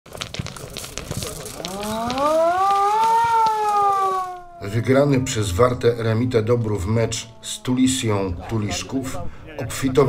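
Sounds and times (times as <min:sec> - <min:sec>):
sharp clicks and clatter: 0:00.1 - 0:04.3
siren winding up: 0:01.6 - 0:08.7.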